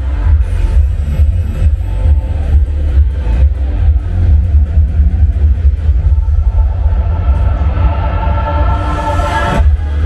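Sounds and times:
electronic music over loudspeakers: 0.0 - 10.0.

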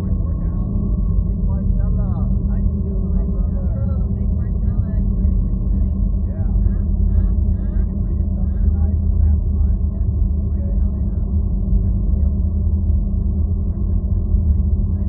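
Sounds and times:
faint indistinct voices: 0.0 - 15.0
loud low rumble: 0.0 - 15.0.

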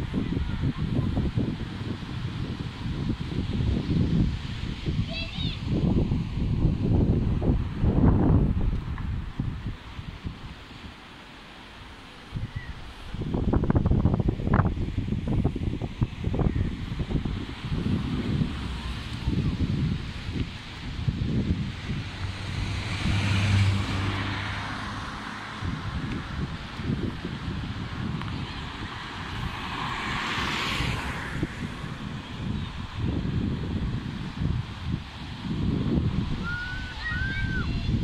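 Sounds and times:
wind buffeting microphone: 0.0 - 38.0
vehicle passing: 16.3 - 34.1.

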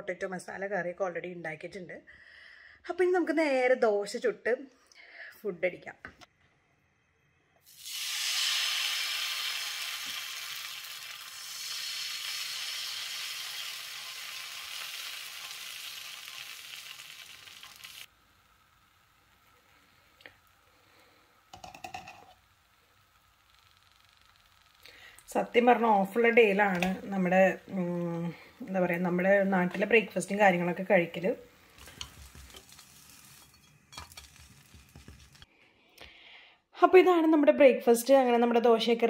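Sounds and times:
batter sizzling on griddle: 7.6 - 30.7, 31.5 - 35.5.

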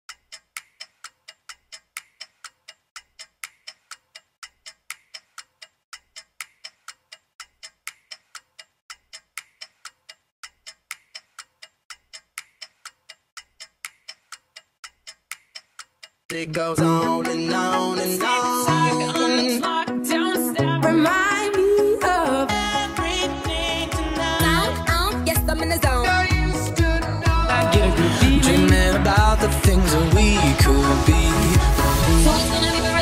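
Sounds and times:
steady ticking: 0.1 - 32.6.

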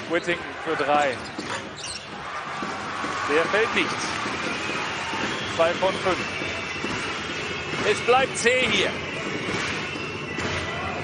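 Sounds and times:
arena crowd noise: 0.0 - 11.0
basketball bouncing on hardwood: 1.2 - 3.3.

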